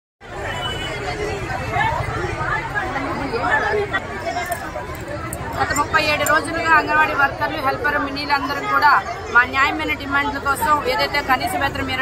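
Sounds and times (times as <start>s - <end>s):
people talking: 0.3s - 12.0s.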